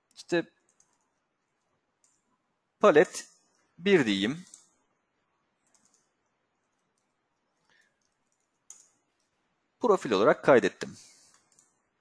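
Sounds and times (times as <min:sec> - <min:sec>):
man speaking: 0:00.2 - 0:00.5, 0:02.8 - 0:04.5, 0:09.8 - 0:11.2.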